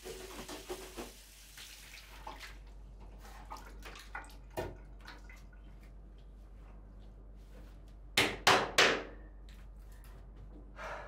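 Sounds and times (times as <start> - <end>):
water splashing at sink: 0.0 - 6.0.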